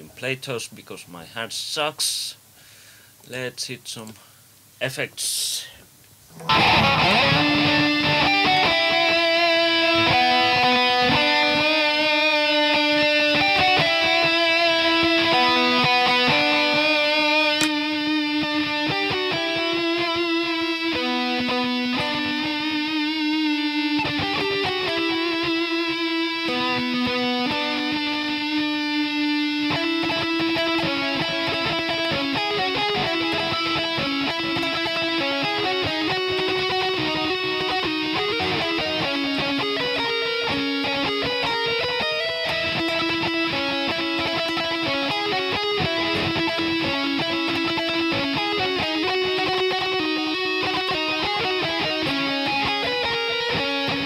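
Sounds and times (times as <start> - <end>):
electric guitar lead line: 6.3 - 54.0.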